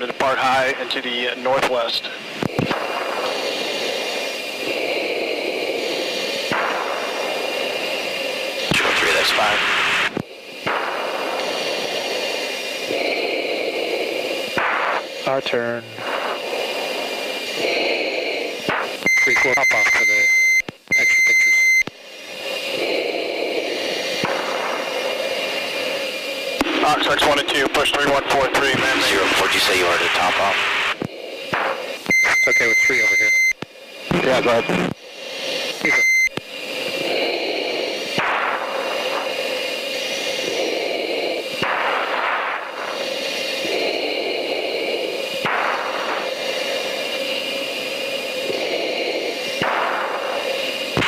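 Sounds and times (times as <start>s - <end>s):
aircraft engine and air noise: 0.0s - 51.0s
radio channel hiss: 0.0s - 51.0s
high-pitched beep tone: 19.0s - 21.9s, 32.1s - 33.6s, 35.8s - 36.3s.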